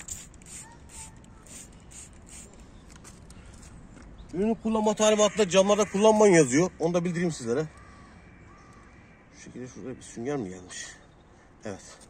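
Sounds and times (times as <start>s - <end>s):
spray bottle pumping: 0.0s - 3.3s.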